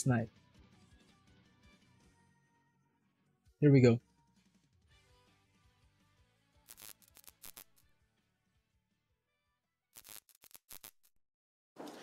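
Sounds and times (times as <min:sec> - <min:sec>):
glitchy digital static crackling: 0:06.7 - 0:07.8, 0:10.0 - 0:11.0.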